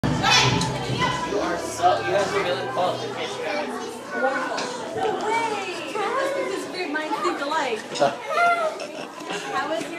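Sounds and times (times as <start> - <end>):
faint music: 0.0 - 8.1
children shouting and chattering: 0.0 - 9.9.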